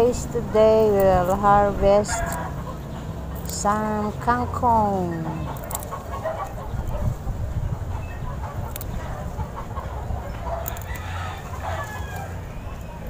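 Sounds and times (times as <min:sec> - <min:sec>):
faint birds calling: 0:00.0 - 0:13.0.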